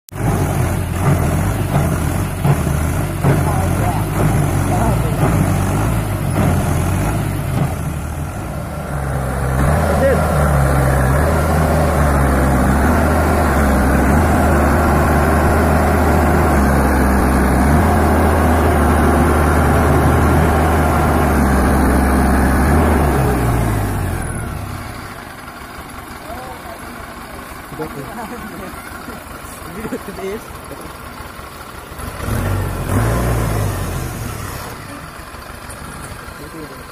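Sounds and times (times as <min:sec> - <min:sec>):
tractor diesel engine under load: 0:00.1 - 0:36.9.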